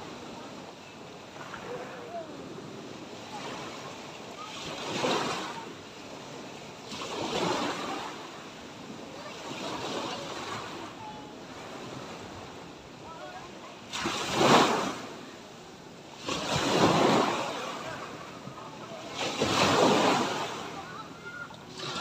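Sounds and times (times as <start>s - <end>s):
small waves breaking on sand: 0.0s - 22.0s.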